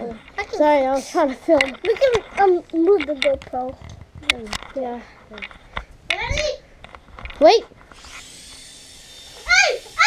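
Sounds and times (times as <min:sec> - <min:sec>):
toy drone motors whining: 0:07.9 - 0:10.0
child shouting: 0:09.3 - 0:10.0.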